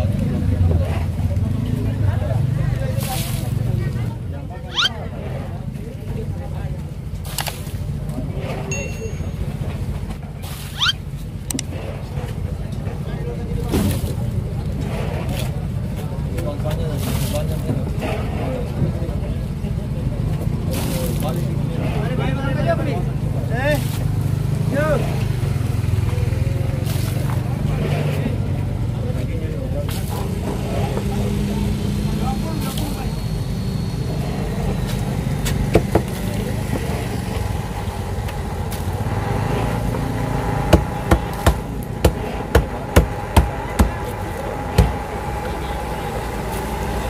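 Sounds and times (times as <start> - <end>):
voices: 0.0 - 47.0
low engine drone: 24.2 - 47.0.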